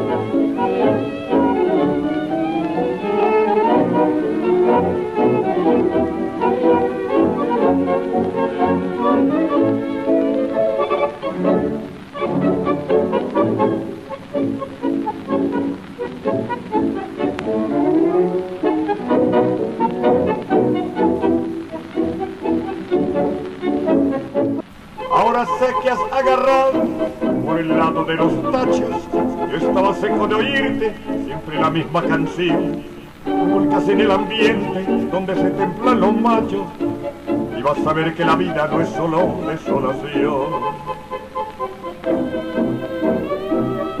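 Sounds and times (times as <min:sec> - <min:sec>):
string orchestra playing tango: 0:00.0 - 0:44.0.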